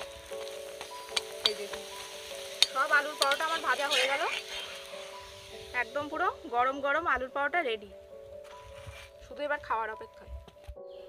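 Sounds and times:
background music with held tones: 0.0s - 11.0s.

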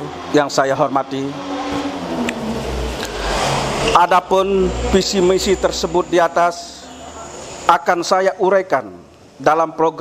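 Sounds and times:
road vehicle passing: 0.0s - 7.9s.

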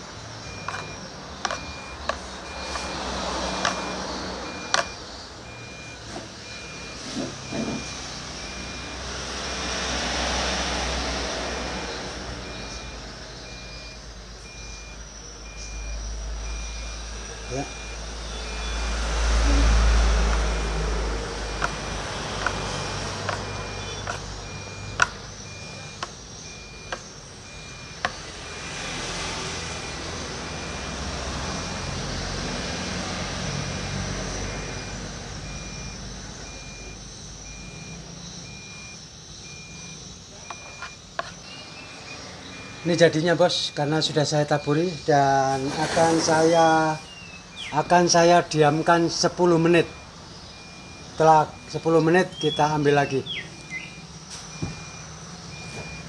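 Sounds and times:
road traffic passing: 0.0s - 56.0s
pulsing high beep: 0.2s - 56.0s.

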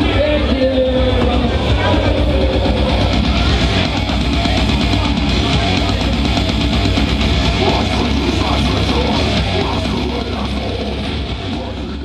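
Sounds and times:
distorted electric guitar: 0.0s - 12.0s
drums: 0.0s - 12.0s.

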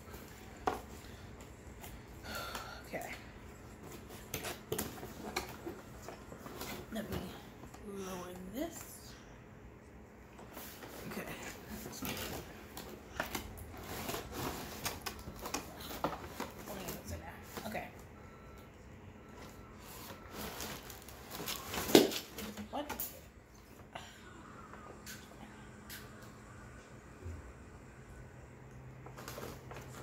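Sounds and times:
cardboard rustling and scraping: 10.5s - 17.8s.

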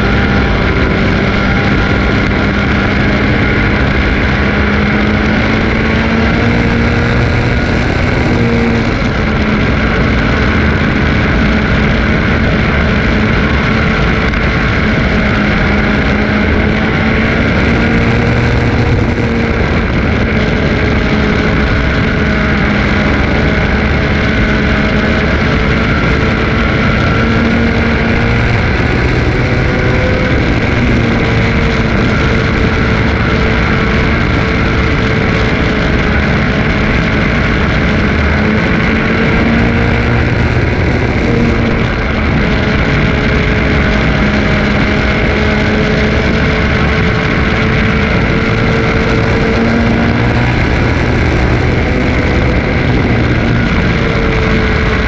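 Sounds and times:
race car engine running hard: 0.0s - 55.0s
wind and road noise: 0.0s - 55.0s.

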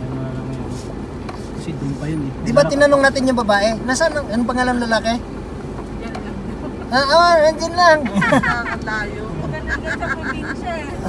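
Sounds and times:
car driving low rumble: 0.0s - 11.0s.

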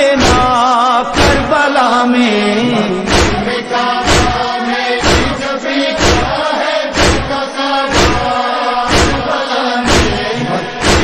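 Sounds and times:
heavy rhythmic thump: 0.0s - 1.8s, 2.6s - 11.0s
voices chanting a lament: 0.0s - 11.0s.

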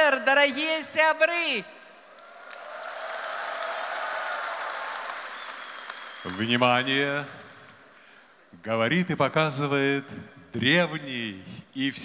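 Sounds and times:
large audience applauding: 2.0s - 8.3s.

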